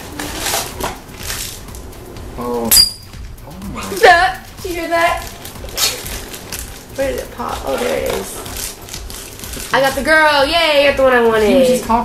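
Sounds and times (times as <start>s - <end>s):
foil bag crinkling and rustling: 0.1s - 1.6s, 5.0s - 10.1s.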